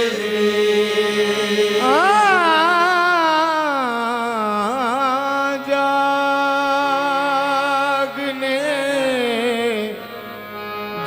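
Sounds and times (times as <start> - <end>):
man singing wordless melody: 0.0 - 10.4.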